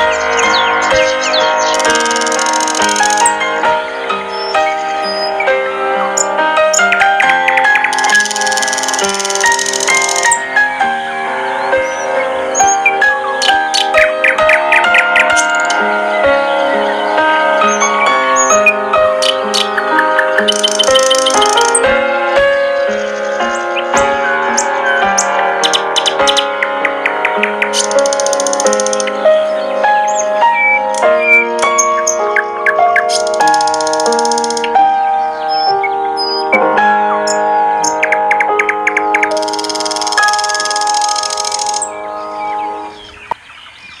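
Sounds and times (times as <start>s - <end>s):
birds chirping trills: 0.0s - 44.0s
gentle piano melody: 0.0s - 44.0s.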